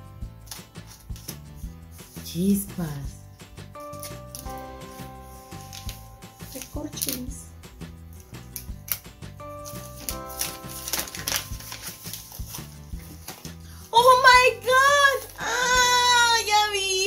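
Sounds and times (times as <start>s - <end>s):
background music with steady beat: 0.0s - 17.0s
paper mailer tearing and crinkling: 9.6s - 13.7s
woman excited cry and laugh: 14.0s - 17.0s.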